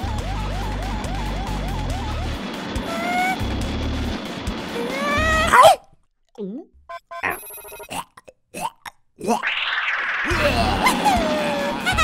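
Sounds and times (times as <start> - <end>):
animal-like vocal: 7.2 - 9.5
rising whine boost effect: 9.3 - 11.8.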